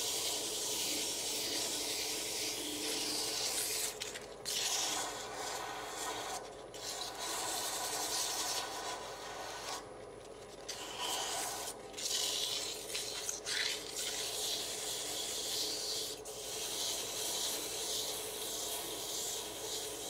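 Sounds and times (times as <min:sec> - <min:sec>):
sandpaper hissing on spinning wood: 0:00.0 - 0:09.8, 0:10.8 - 0:20.0.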